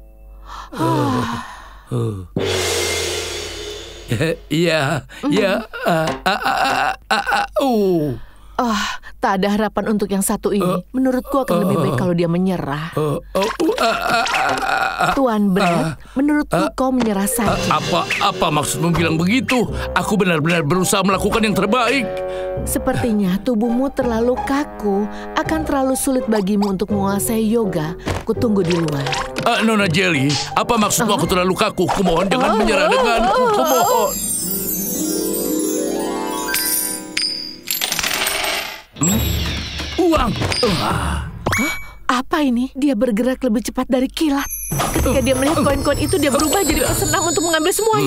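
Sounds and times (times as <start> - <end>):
coins dropping on wooden floor: 36.8 - 38.9.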